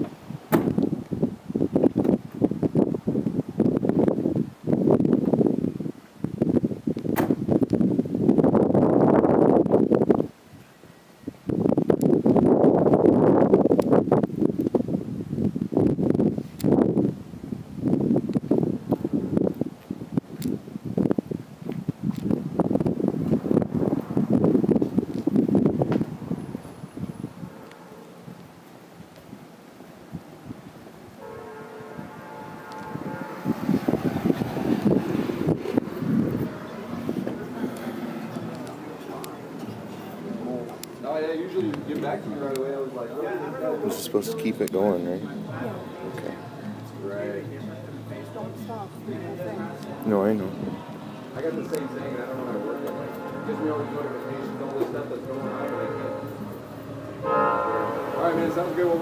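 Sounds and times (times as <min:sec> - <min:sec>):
wind buffeting microphone: 0:00.0 - 0:42.9.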